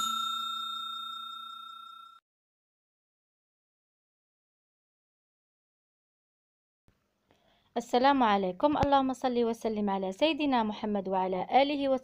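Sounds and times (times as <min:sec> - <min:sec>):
notification bell ding: 0:00.0 - 0:02.2.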